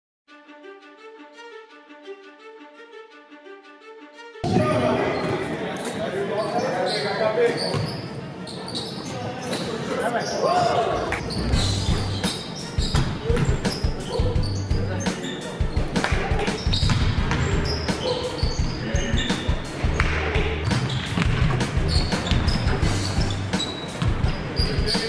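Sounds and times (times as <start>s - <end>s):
music playing: 0.3s - 5.9s, 8.2s - 25.0s
players' voices: 4.4s - 25.0s
basketball bouncing on hardwood: 16.1s - 17.7s, 20.0s - 22.8s.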